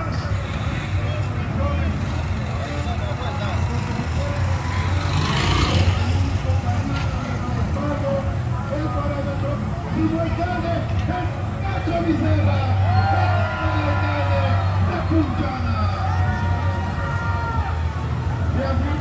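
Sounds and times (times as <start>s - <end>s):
vehicle passing close: 0.0s - 8.4s.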